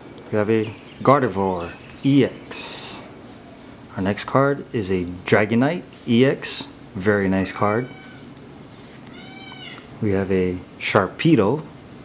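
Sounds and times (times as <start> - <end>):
faint high-pitched call: 7.6 - 8.3, 9.1 - 9.9.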